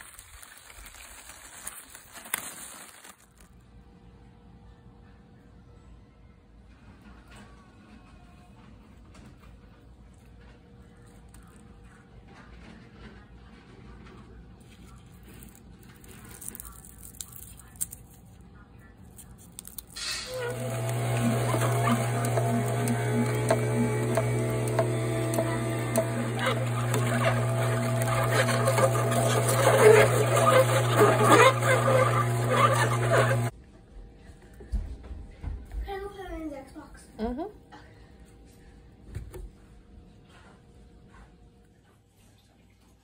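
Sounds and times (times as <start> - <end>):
produce crackling and crunching: 0.0 - 3.8, 14.6 - 33.5
juicer motor hum: 20.0 - 33.5.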